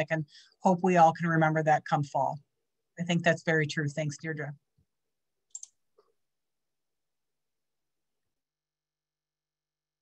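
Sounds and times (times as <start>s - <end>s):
clicks: 5.5s - 6.1s.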